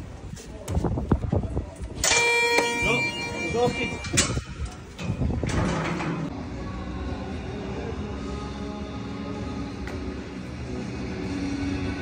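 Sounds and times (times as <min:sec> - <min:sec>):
ticket scanner beep: 0:02.0 - 0:04.4.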